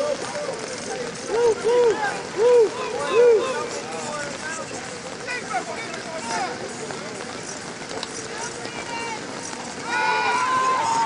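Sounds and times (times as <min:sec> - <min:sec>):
distant shouting voices: 0:01.2 - 0:03.8, 0:09.8 - 0:11.0.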